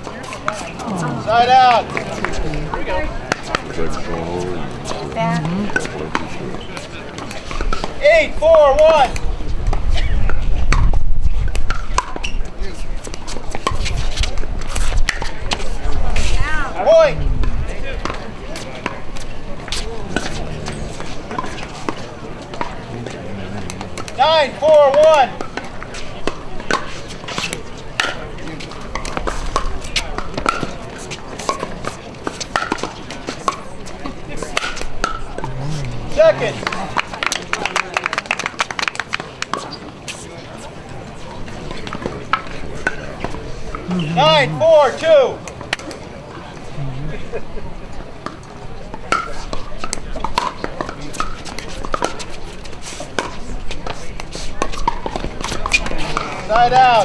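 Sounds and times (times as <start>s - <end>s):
murmur of spectators: 0.0s - 57.0s
voiced calls: 35.3s - 37.2s, 43.8s - 45.0s.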